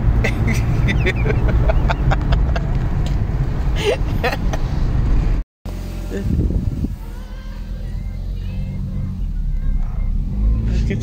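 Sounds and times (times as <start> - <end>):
car driving rumble: 0.0 - 11.0
laughter: 0.2 - 2.8, 3.8 - 4.7
faint voices: 6.9 - 11.0.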